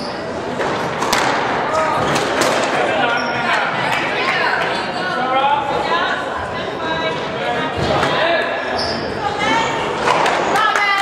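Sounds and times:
squash ball hits echoing: 0:00.5 - 0:02.9.

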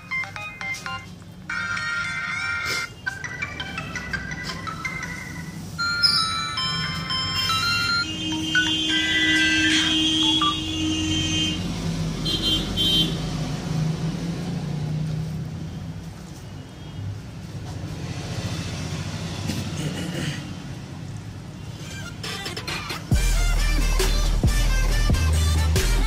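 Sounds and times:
synth ringtone from phone speaker: 0:00.0 - 0:10.7.

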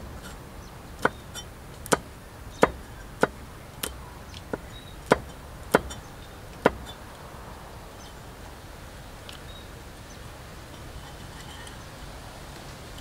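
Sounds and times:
cleaver chopping on wooden board: 0:01.0 - 0:06.0, 0:06.6 - 0:07.0.

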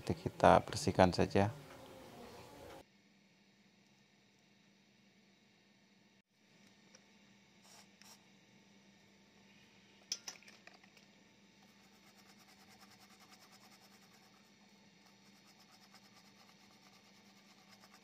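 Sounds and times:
cotton swab scratching circuit board: 0:11.6 - 0:18.0.

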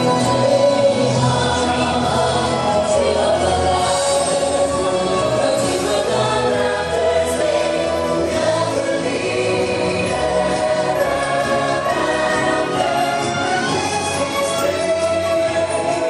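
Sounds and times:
choir singing held notes: 0:00.0 - 0:16.0
instrumental backing music: 0:00.0 - 0:16.0.

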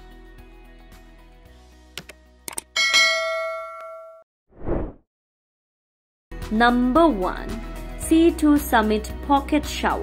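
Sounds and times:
bright bell ding: 0:02.8 - 0:04.2
short swish of noise: 0:04.6 - 0:05.0
background music: 0:06.3 - 0:10.0.

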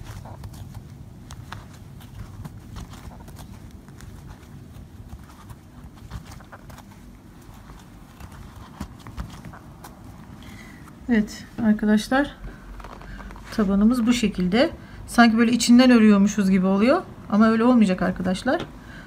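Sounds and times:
hands handling cord rumble: 0:00.0 - 0:11.7, 0:12.4 - 0:14.4.

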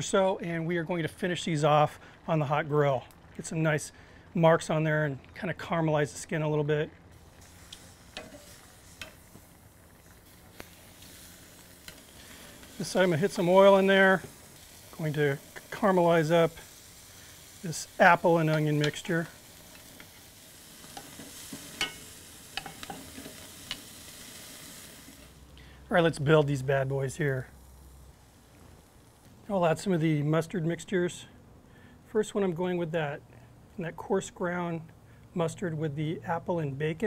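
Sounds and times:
sausages sizzling on a grill: 0:00.0 - 0:31.3
metal tongs clicking on grate: 0:18.4 - 0:19.0, 0:20.9 - 0:22.0, 0:22.6 - 0:23.8
metal tongs clicking against pan: 0:18.5 - 0:19.0, 0:22.6 - 0:23.0.

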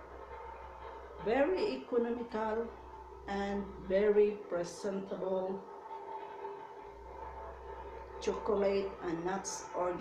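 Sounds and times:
deeper low hum: 0:00.0 - 0:05.8
steady hum: 0:00.0 - 0:10.0.

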